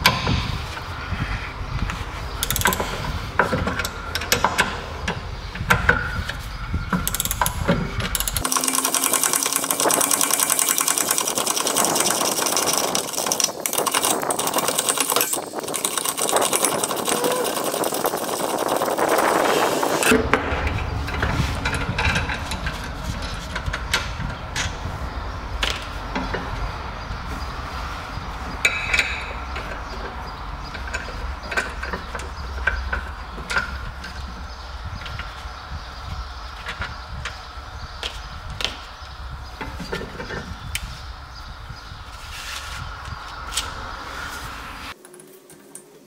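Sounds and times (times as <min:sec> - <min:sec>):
rapid ratchet clicking: 0:02.4 - 0:03.0, 0:07.0 - 0:20.1.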